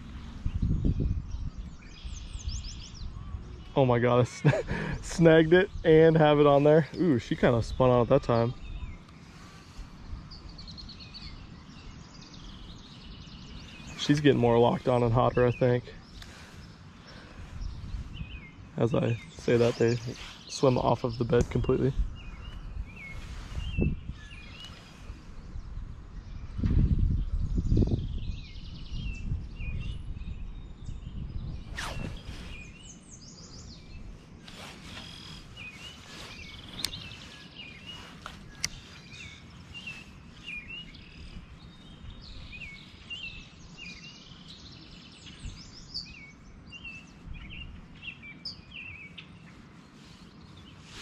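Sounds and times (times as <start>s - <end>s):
small birds chirping: 0.0s - 51.0s.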